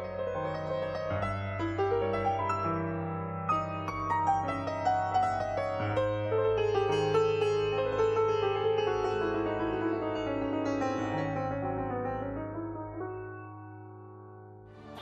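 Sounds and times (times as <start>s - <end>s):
grand piano quick notes: 0.0s - 15.0s.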